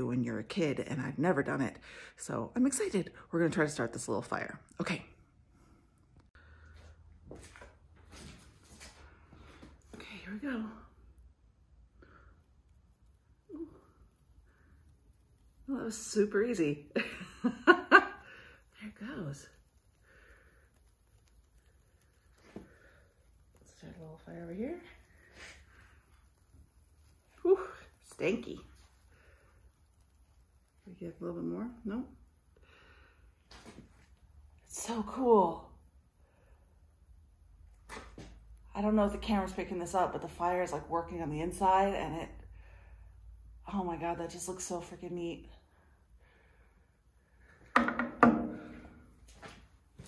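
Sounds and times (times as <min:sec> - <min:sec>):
faint breath: 0:01.8 - 0:02.2, 0:05.5 - 0:07.0, 0:32.6 - 0:33.4, 0:42.5 - 0:43.2, 0:45.7 - 0:47.8
rustling and handling knocks: 0:47.7 - 0:49.0.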